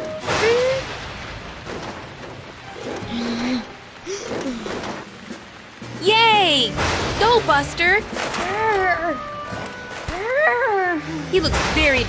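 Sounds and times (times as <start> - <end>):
background music: 5.7 - 12.0.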